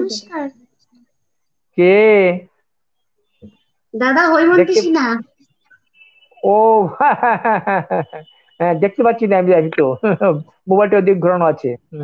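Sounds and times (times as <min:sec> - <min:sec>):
girl speaking over video call: 0:00.0 - 0:00.6, 0:04.0 - 0:05.4.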